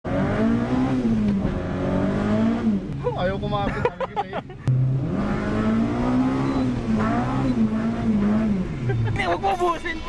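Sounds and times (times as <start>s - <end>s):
car engine accelerating hard: 0.1s - 3.7s, 4.6s - 9.5s.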